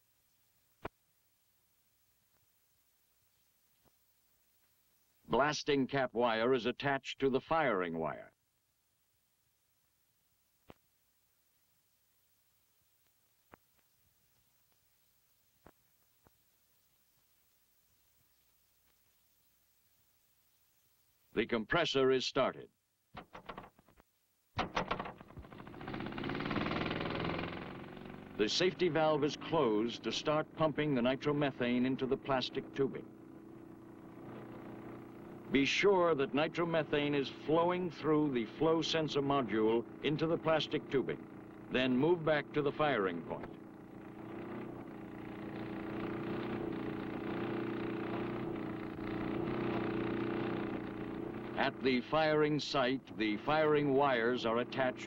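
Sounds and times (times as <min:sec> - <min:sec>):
small compressor engine running: 0:24.6 - 0:55.0.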